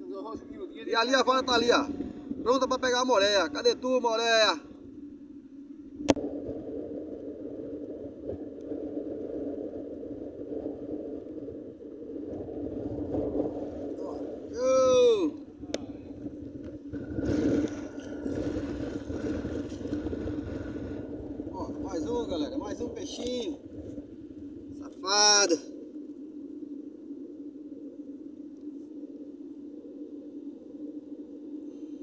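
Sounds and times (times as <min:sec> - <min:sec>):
water: 0:00.0 - 0:32.0
wind: 0:00.0 - 0:32.0
man shouting: 0:14.5 - 0:15.4.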